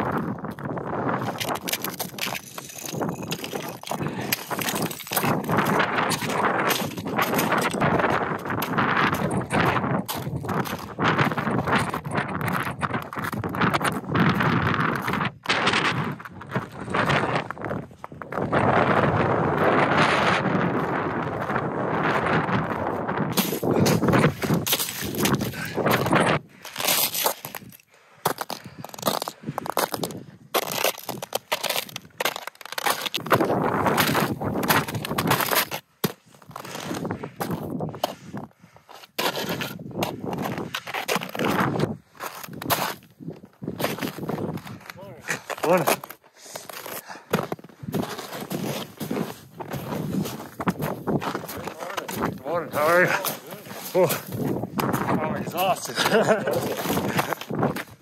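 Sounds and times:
boots crunching on snow and ice: 0.1s - 15.2s, 20.6s - 38.2s, 38.8s - 58.0s.

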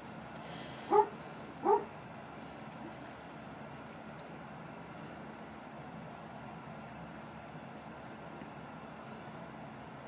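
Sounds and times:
faint room hiss: 0.0s - 10.0s
dog whimpering: 0.9s - 1.9s.

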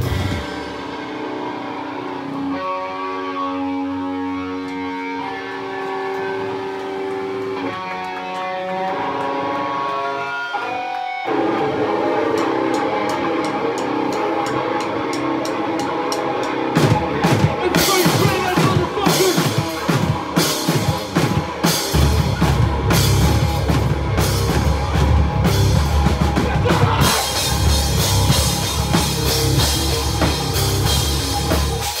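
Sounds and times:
full drum kit: 0.0s - 5.0s, 7.3s - 32.0s
distorted guitar riff: 0.0s - 32.0s
electric guitar ringing chords: 0.0s - 32.0s
cymbal ticks: 12.3s - 16.6s.

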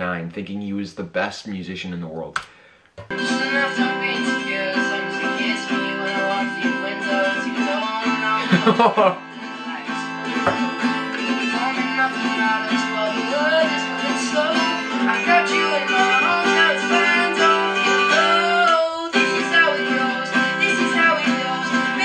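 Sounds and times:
acoustic guitar strumming: 3.1s - 22.0s
boy singing: 3.2s - 10.0s, 10.6s - 22.0s
person laughing: 8.4s - 9.2s.

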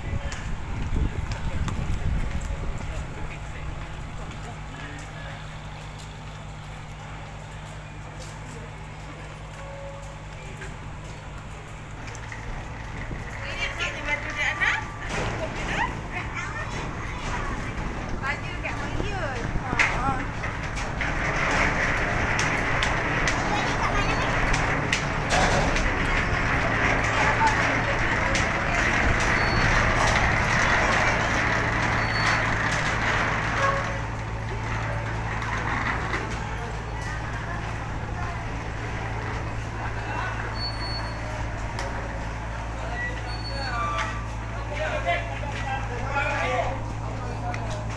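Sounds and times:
boat engine droning: 0.0s - 47.9s
crowd chatter: 0.0s - 47.9s.

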